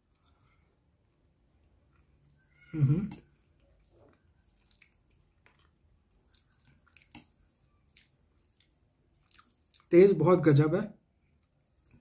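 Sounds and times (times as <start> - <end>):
man chewing: 0.0 - 0.8, 1.7 - 9.9.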